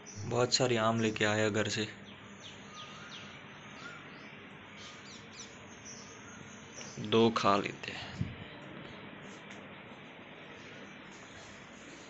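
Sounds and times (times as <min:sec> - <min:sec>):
steady background hiss: 0:00.0 - 0:12.0
bird chirps: 0:02.0 - 0:07.2.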